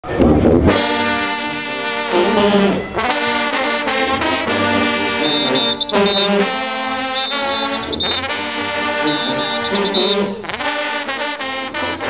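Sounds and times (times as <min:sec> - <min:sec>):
brass section holding chord: 0:00.9 - 0:12.0.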